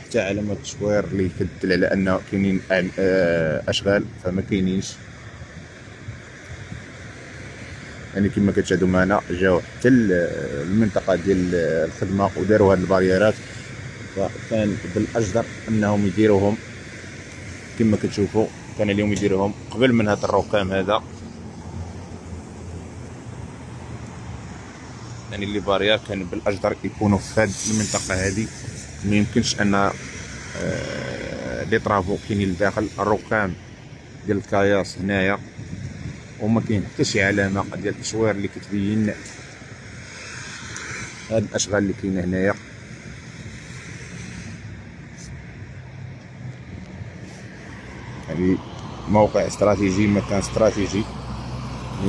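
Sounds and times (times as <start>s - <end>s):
distant road traffic rumble: 0.0s - 52.0s
even hiss: 25.0s - 33.6s.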